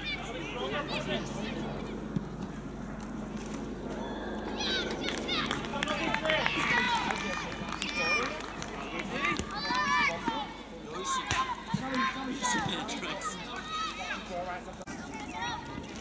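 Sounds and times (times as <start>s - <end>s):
low outdoor rumble: 0.0s - 11.8s
children shouting: 4.0s - 5.7s.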